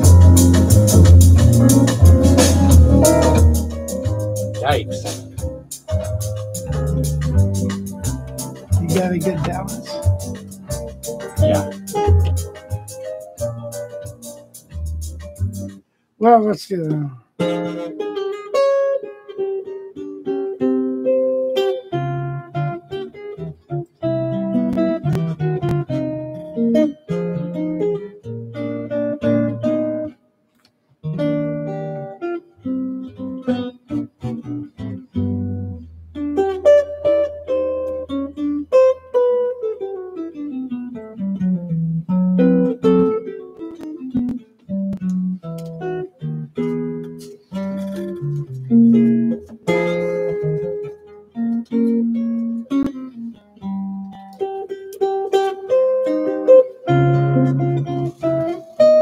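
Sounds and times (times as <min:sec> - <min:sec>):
fingerstyle jazz guitar: 0:00.0 - 0:59.0.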